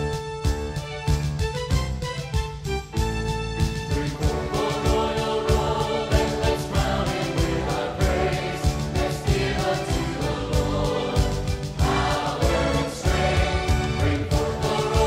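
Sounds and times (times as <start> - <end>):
band playing: 0.0 - 15.0
steady drum beat: 0.0 - 15.0
choir singing: 4.0 - 15.0.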